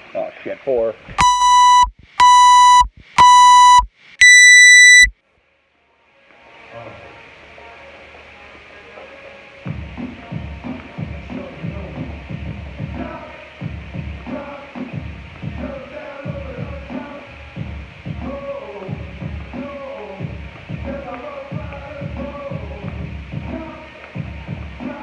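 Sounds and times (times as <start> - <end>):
long high beep: 1.2 - 5.1
timer beeps: 1.2 - 5.1.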